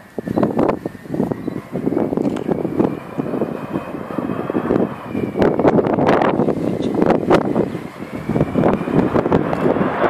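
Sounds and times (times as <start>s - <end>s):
jet engines rumbling: 0.0s - 10.0s
wind buffeting microphone: 0.0s - 10.0s
faint high whistle: 0.1s - 3.0s, 5.0s - 5.8s.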